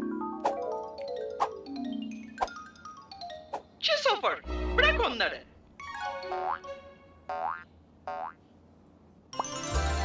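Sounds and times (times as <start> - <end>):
cartoon boing effects: 7.3 - 8.4.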